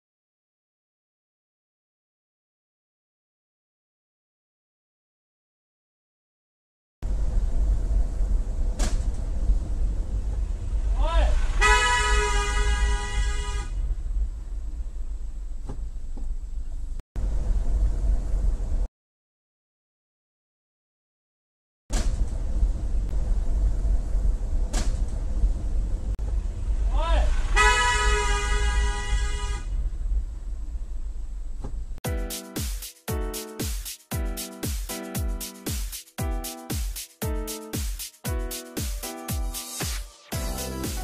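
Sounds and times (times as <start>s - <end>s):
road noise: 7.0s - 18.9s, 21.9s - 32.0s
person exclaiming: 11.0s - 11.3s, 26.9s - 27.3s
person shouting: 11.0s - 11.3s, 26.9s - 27.3s
vehicle horn blast: 11.2s - 13.8s, 27.3s - 29.7s.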